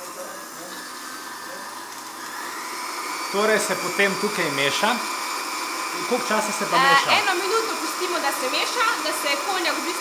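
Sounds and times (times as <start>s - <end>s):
blender running: 0.0s - 10.0s.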